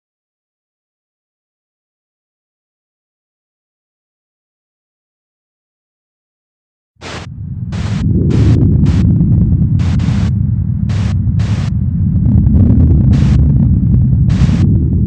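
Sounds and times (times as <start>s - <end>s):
bursts of static hiss: 7.0s - 11.8s, 13.1s - 13.5s, 14.3s - 14.7s
loud deep rumble: 7.0s - 15.0s.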